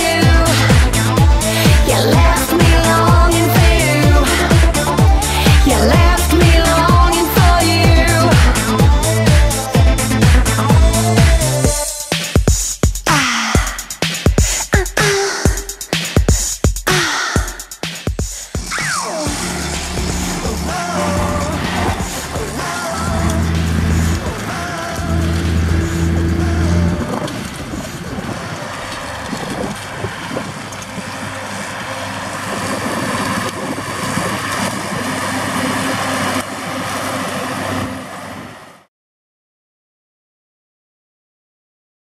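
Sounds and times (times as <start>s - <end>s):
tractor diesel engine running: 0.0s - 11.9s, 18.6s - 38.8s
electronic music with bass line: 0.0s - 28.3s.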